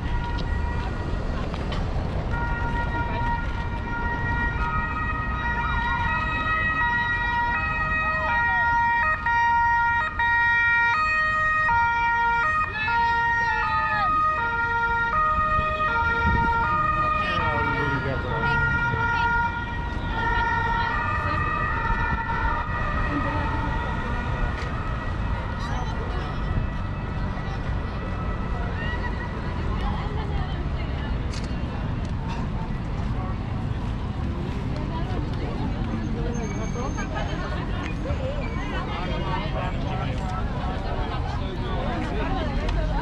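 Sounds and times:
two-tone siren: 0.0s - 1.5s, 2.3s - 29.5s
street traffic noise: 0.0s - 43.0s.

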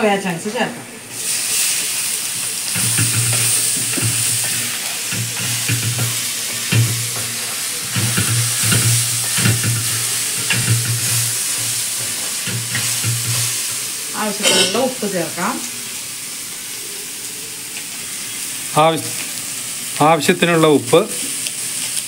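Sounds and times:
food sizzling in hot oil: 0.0s - 22.0s
spatula scraping a metal pan: 2.7s - 13.8s.

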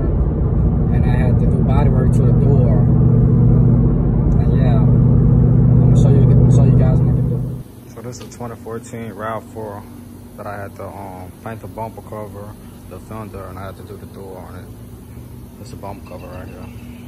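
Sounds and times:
car engine and road hum: 0.0s - 7.7s.

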